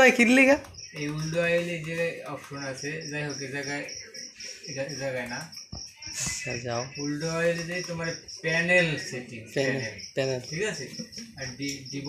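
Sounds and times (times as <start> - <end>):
high-pitched chirping: 0.3 - 12.0.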